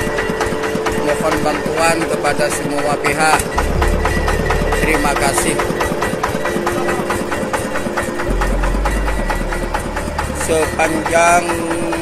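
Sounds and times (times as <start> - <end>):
boat engine idling: 0.0 - 12.0
deep low rumble: 3.6 - 6.0, 8.3 - 10.6.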